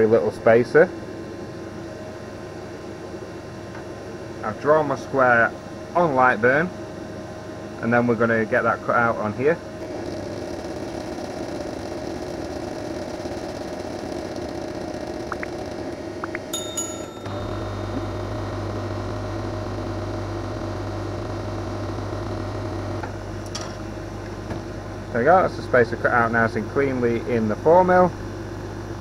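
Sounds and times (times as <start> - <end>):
laser cutter humming: 9.5 - 28.6
deeper low hum: 17.3 - 23.0.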